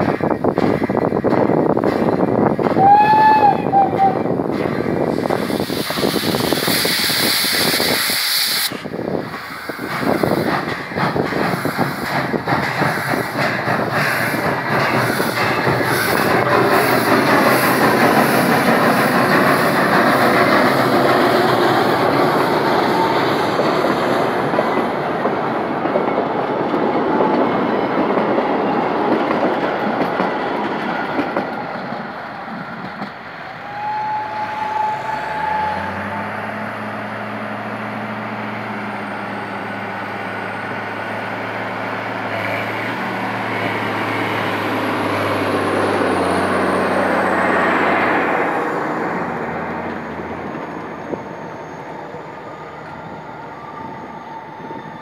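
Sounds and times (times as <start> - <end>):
train wheels clattering on rails: 0.0 - 53.2.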